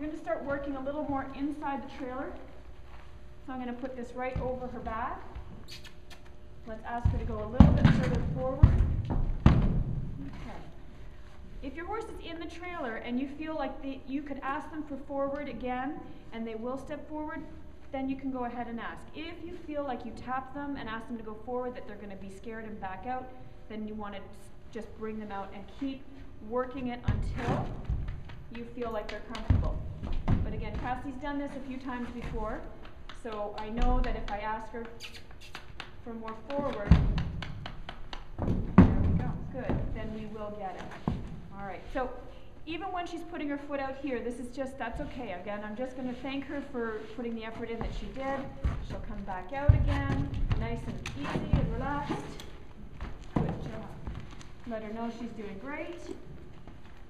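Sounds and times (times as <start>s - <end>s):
horse hooves thudding on trailer floor: 4.1s - 5.5s, 6.7s - 10.4s, 26.6s - 35.0s, 35.7s - 42.0s, 47.4s - 56.8s
hoof thud on trailer floor: 27.0s - 31.2s, 47.5s - 54.3s.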